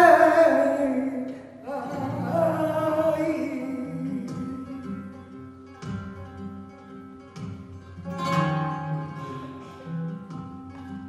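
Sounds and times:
woman singing: 0:00.0 - 0:05.0
flamenco guitar playing: 0:00.0 - 0:11.0.

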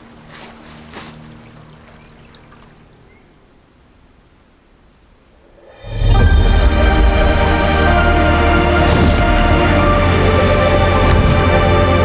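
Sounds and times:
background hiss: 0:00.0 - 0:12.0
loud music: 0:05.8 - 0:12.0.

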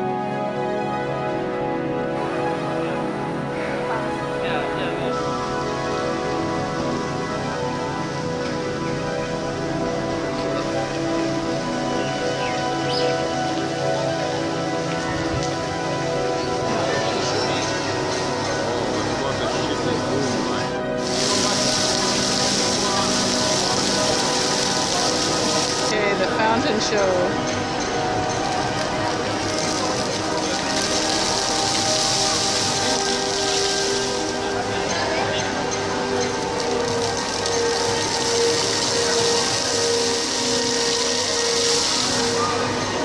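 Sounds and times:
fountain jets splashing on paving: 0:00.0 - 0:43.0
murmur of crowd: 0:00.0 - 0:43.0
music with held tones: 0:00.0 - 0:43.0.

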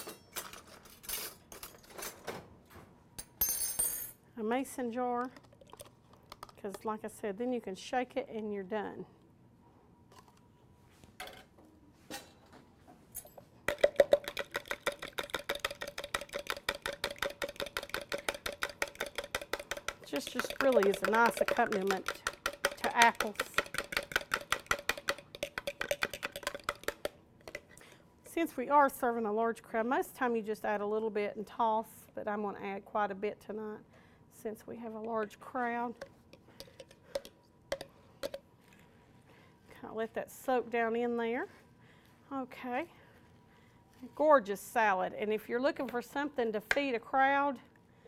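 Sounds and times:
whisk clicking in plastic container: 0:13.7 - 0:27.6.

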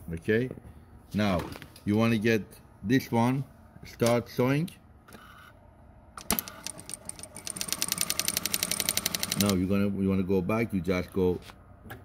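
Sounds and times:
industrial sewing machine stitching: 0:06.3 - 0:09.6.

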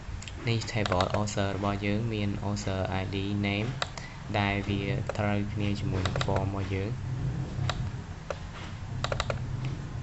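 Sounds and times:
low steady hum: 0:00.0 - 0:10.0
computer mouse and key clicks: 0:00.2 - 0:01.7, 0:03.6 - 0:04.1, 0:04.9 - 0:06.7, 0:07.6 - 0:09.8.

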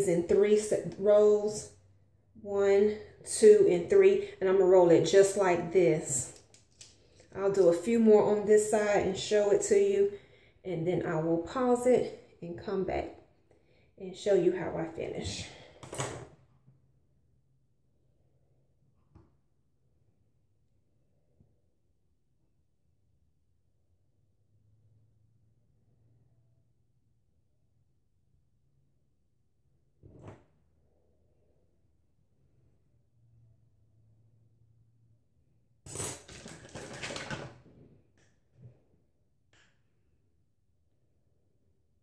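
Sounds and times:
faint low hum: 0:16.7 - 0:35.8.

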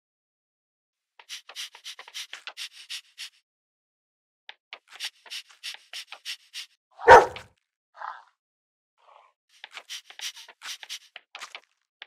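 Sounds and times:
dog barking: 0:07.0 - 0:08.2.

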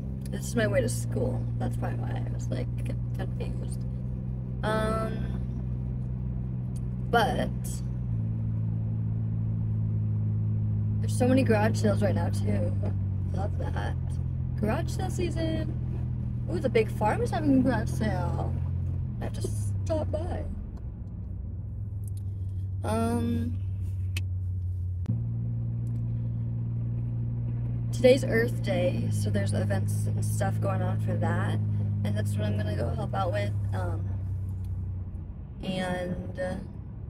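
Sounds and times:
car engine and road drone: 0:00.0 - 0:37.0.

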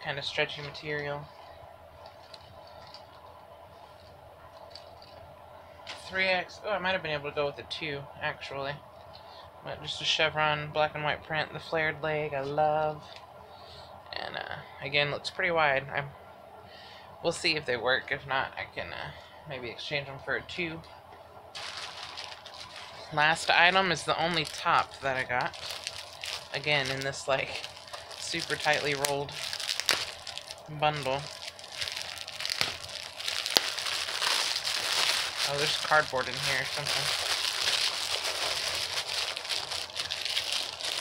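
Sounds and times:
plastic mailer bag crinkling: 0:21.6 - 0:41.0.

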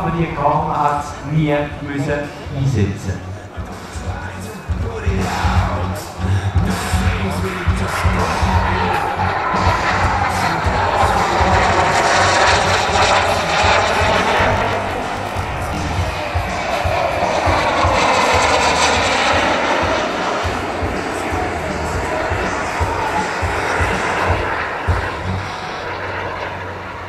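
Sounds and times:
model jet turbine passing: 0:07.8 - 0:27.0.

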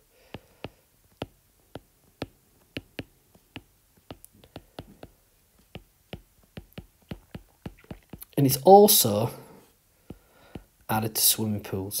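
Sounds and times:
stylus tapping on glass screen: 0:00.3 - 0:08.4.

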